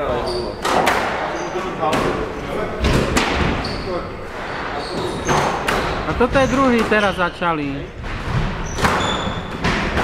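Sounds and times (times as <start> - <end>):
squash ball hits: 8.0 - 10.0.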